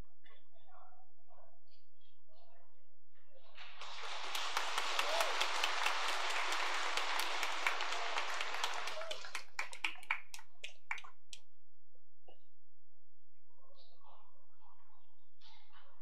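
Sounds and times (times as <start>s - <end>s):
congregation applauding: 3.8s - 10.4s.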